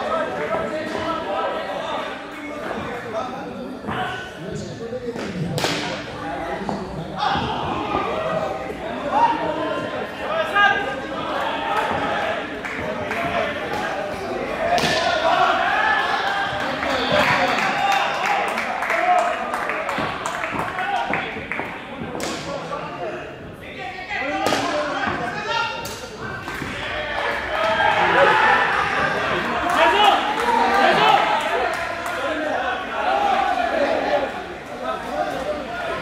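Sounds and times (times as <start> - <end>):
players shouting in echoing hall: 0.0 - 36.0.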